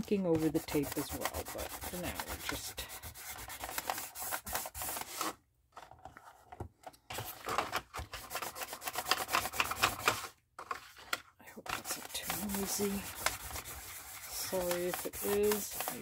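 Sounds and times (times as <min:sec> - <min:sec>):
foam applicator scrubbing on card: 0:00.0 - 0:05.1, 0:11.7 - 0:16.0.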